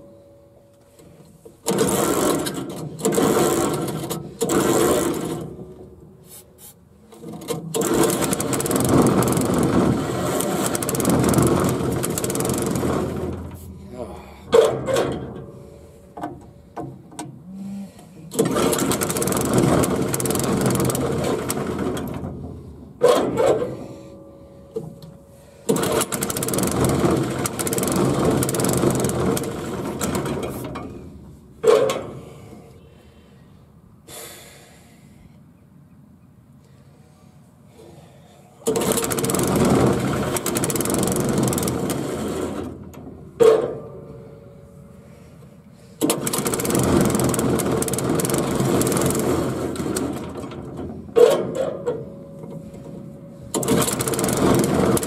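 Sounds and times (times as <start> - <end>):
small gasoline engine starting: 1.6 - 5.6, 7.2 - 13.6, 18.3 - 22.4, 25.6 - 31.0, 38.6 - 42.9, 46.0 - 51.7, 53.5 - 55.0.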